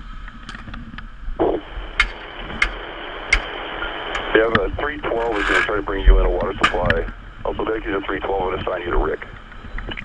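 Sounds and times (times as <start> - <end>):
radio channel hiss: 0.0 - 10.0
sharp clicks: 1.9 - 4.7.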